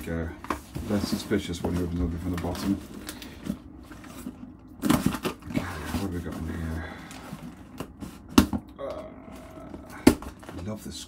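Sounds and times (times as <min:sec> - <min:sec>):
cardboard flaps scraping: 0:00.2 - 0:08.6.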